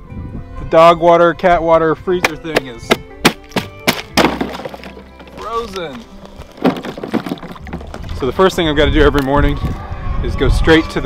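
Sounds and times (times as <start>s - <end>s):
sharp knock: 2.5s - 4.9s
ice and water sloshing in bowl: 4.2s - 8.2s.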